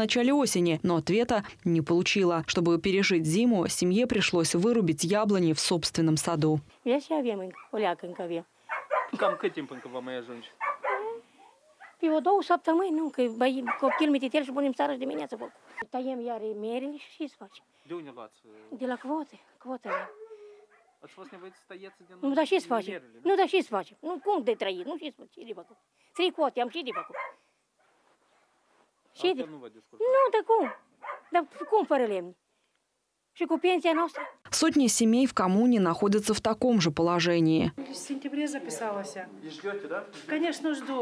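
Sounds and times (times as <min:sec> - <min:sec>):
woman's voice: 0:00.0 - 0:08.5, 0:10.9 - 0:11.3, 0:12.0 - 0:17.6, 0:18.7 - 0:20.2, 0:22.2 - 0:27.1, 0:30.0 - 0:32.4, 0:33.4 - 0:39.4
elderly woman speaking: 0:00.0 - 0:09.7, 0:10.8 - 0:11.3, 0:12.0 - 0:17.7, 0:18.7 - 0:20.4, 0:22.2 - 0:27.2, 0:29.1 - 0:32.4, 0:33.4 - 0:41.0
distant dog barking: 0:07.5 - 0:12.1, 0:13.6 - 0:14.2, 0:19.8 - 0:22.3, 0:26.8 - 0:27.4, 0:30.6 - 0:31.9, 0:33.8 - 0:34.4.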